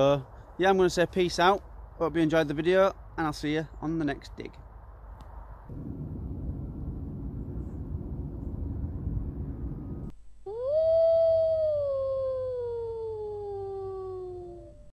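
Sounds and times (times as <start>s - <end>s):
low rumbling: 5.5s - 13.6s
wolf howl: 10.5s - 14.9s.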